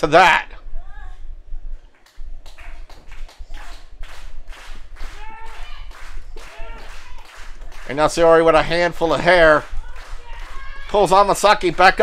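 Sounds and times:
high-pitched shouts: 5.0s - 7.5s, 9.7s - 11.4s.

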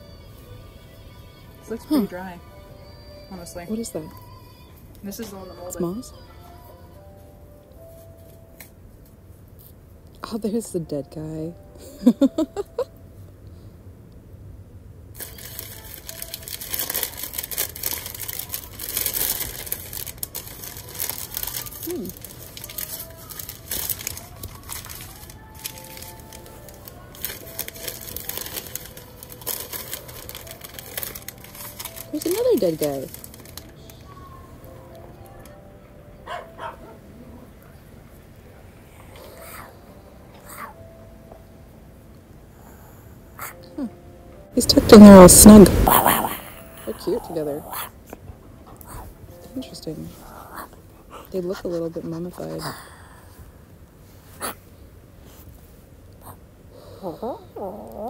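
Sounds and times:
moss rustling and crackling: 15.2s - 33.8s
puppy barking: 36.2s - 37.4s.

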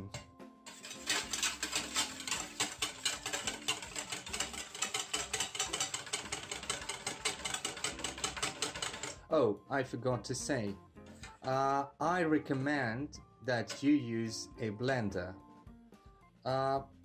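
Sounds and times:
whisk clicking in metal bowl: 0.1s - 9.2s.

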